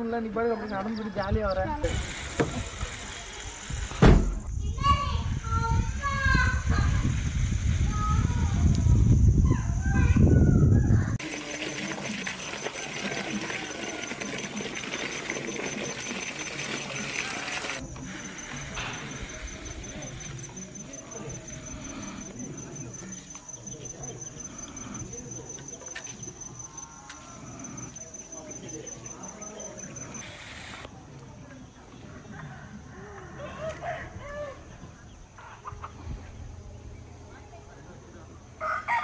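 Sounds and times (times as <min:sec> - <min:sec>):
loud hiss: 0:01.8 - 0:04.5, 0:05.2 - 0:08.6
insect pulsing trill: 0:11.9 - 0:30.9.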